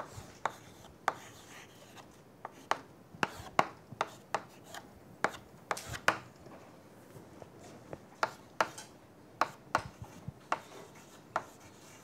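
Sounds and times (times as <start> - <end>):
chalk scratching: 0.0 - 2.6, 9.4 - 12.0
chalk tapping on chalkboard: 0.0 - 6.2, 8.2 - 12.0.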